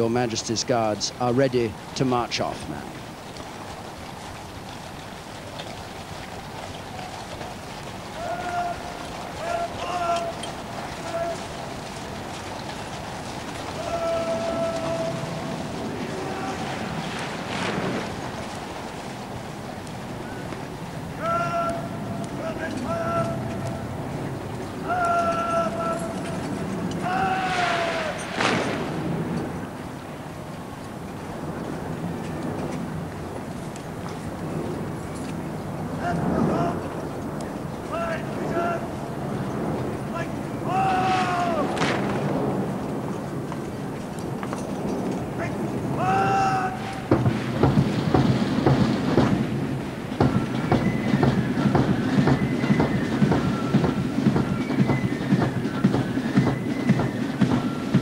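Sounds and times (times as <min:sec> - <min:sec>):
drill officer shouting commands: 0:00.0 - 0:02.9, 0:08.1 - 0:11.6, 0:13.7 - 0:17.0, 0:21.1 - 0:24.0, 0:24.8 - 0:28.2, 0:36.0 - 0:37.0, 0:37.8 - 0:39.3, 0:40.0 - 0:41.8, 0:45.4 - 0:47.2
marching boots and rifles crashing: 0:24.5 - 0:29.6, 0:40.8 - 0:46.0, 0:46.8 - 0:58.0.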